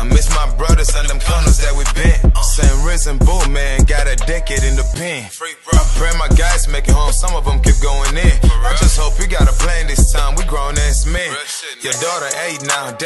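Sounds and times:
heavy bass hits: 0.0 - 5.0, 5.8 - 11.2
rapping over a beat: 0.0 - 13.0.

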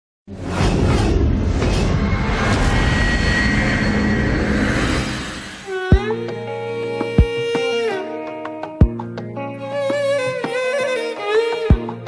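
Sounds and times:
rumbling roar: 0.3 - 5.7.

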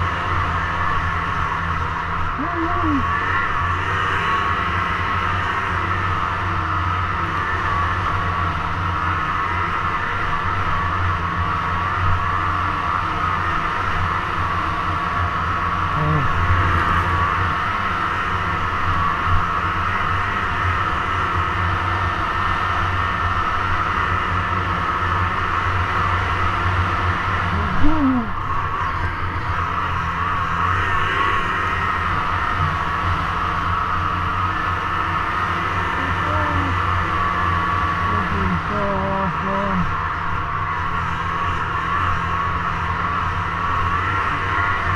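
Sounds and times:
snowmobile engine running: 25.4 - 44.9.

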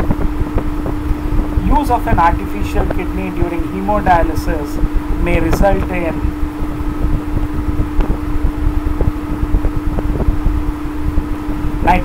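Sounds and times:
constant tone hum: 0.0 - 12.0
low rumble: 0.0 - 12.0.

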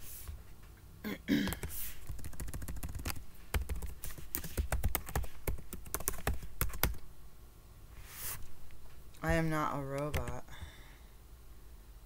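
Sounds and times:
typing on computer keyboard: 1.5 - 7.0, 10.0 - 10.4.

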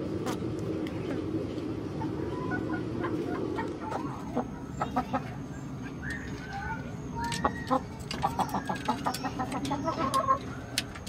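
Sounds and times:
steady low rumble: 0.0 - 11.0
chickens clucking: 0.9 - 11.0.

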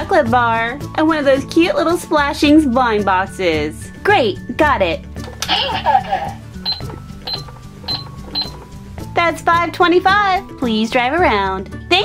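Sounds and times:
toy cash register beeps: 5.3 - 8.7.

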